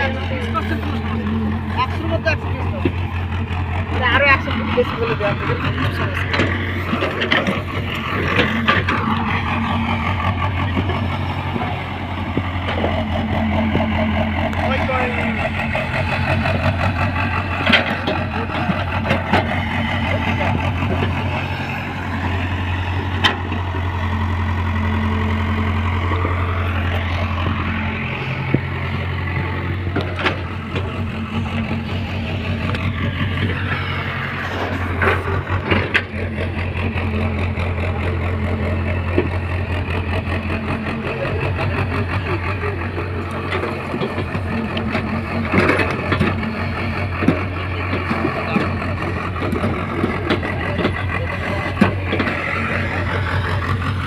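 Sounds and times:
excavator diesel engine running: 0.0 - 54.0.

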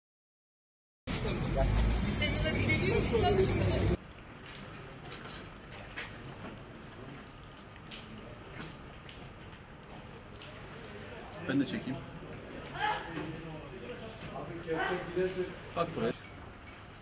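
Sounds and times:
traffic: 1.1 - 13.0
street voices: 1.1 - 17.0.

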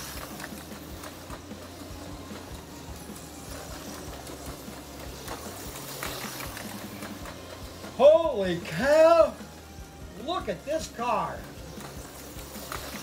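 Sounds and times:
slot car motor whirring: 0.0 - 13.0.

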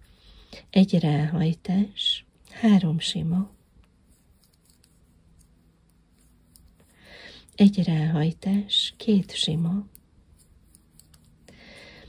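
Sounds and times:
knitting needles clicking: 3.8 - 7.6, 8.3 - 11.5.

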